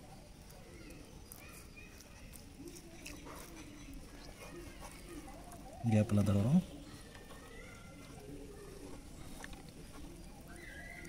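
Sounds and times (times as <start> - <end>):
low steady hush: 0.0 - 11.0.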